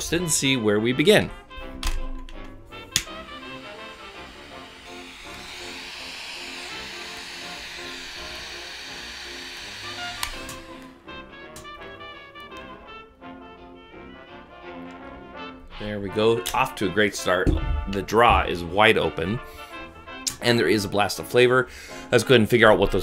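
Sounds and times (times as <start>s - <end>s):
background music: 0.0s - 23.0s
torch lighter hissing: 2.9s - 11.1s.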